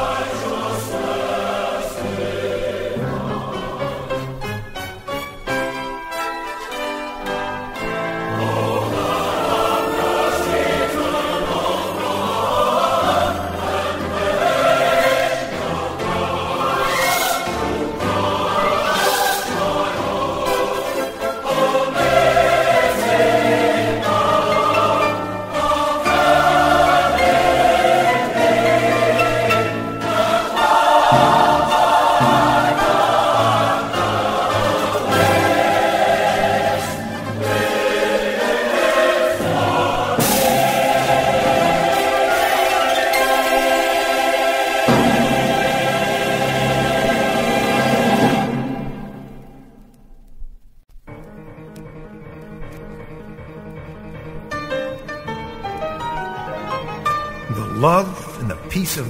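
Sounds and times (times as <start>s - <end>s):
choir singing sacred music: 0.0s - 4.6s, 6.8s - 49.9s
instrumental accompaniment: 0.0s - 49.9s.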